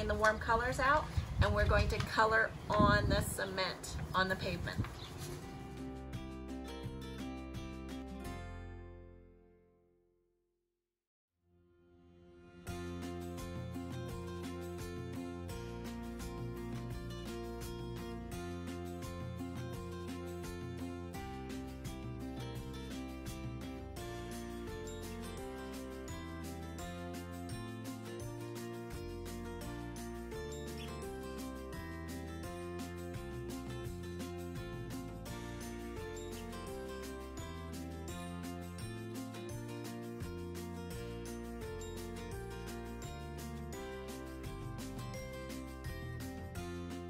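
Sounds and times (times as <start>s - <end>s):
instrumental music with bass line: 5.1s - 9.5s, 12.7s - 47.0s.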